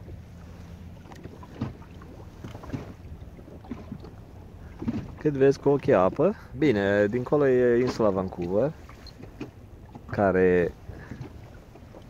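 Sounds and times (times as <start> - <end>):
water slapping against boat hull: 0.0 - 12.0.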